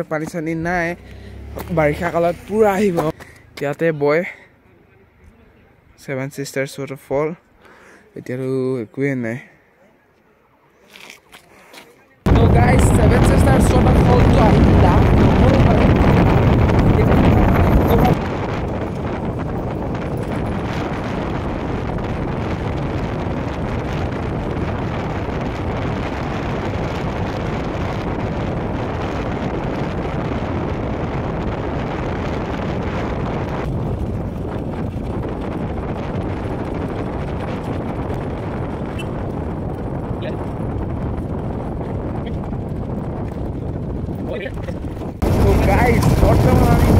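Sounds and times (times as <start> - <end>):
wind buffeting microphone: 12.3 - 46.9
motorcycle engine running: 32.4 - 46.9.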